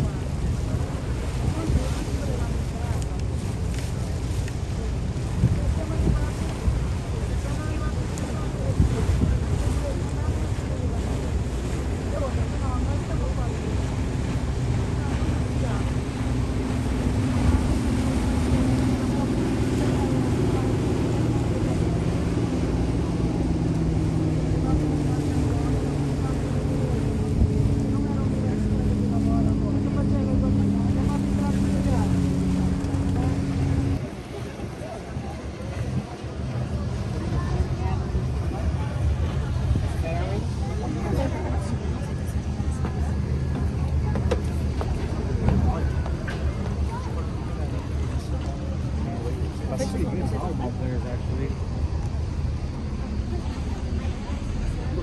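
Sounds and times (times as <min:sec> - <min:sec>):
ferry engine running: 0:00.0 - 0:55.0
water noise: 0:00.0 - 0:55.0
wind buffeting microphone: 0:00.0 - 0:55.0
engine drone with pitched tones: 0:14.9 - 0:55.0.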